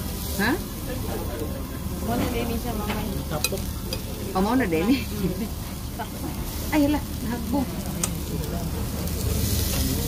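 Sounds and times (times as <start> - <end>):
beef sizzling on a grill: 0.0 - 10.0.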